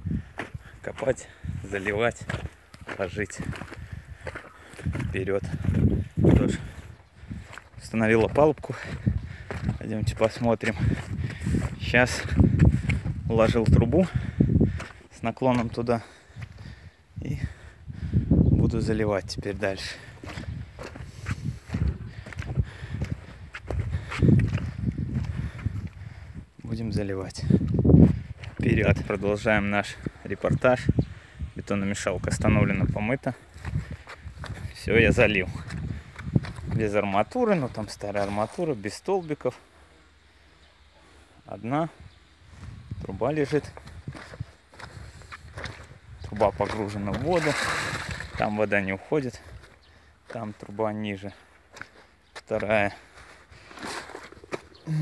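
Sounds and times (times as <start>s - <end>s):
footsteps on sandy ground: 0.0s - 39.9s, 41.0s - 55.0s
faint outdoor background: 0.0s - 55.0s
man speaking: 0.8s - 2.3s, 2.9s - 3.5s, 34.8s - 35.6s, 36.8s - 39.6s.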